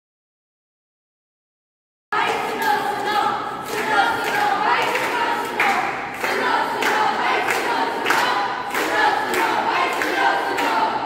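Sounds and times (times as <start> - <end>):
group singing in chorus: 2.2 - 11.0
hand claps: 3.6 - 10.9.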